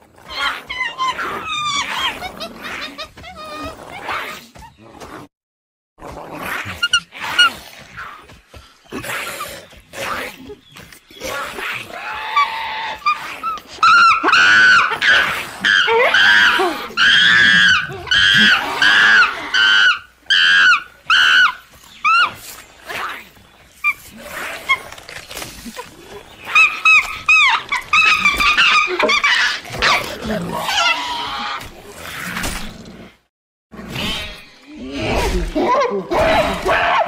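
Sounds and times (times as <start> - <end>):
creature shrieks: 33.9 - 37.0.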